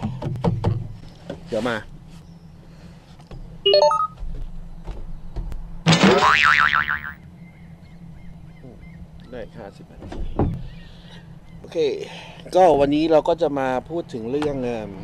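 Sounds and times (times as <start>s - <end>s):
short electronic beeps: 3.7s - 4.2s
wobbling cartoon boing: 5.9s - 7.2s.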